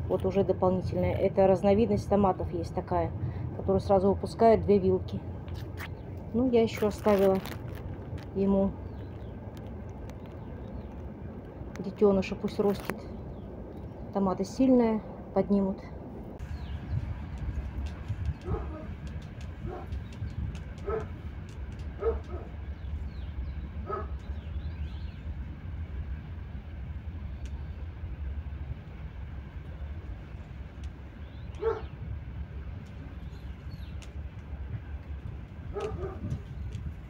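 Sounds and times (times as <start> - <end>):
steady low rumble: 0.0 - 37.0.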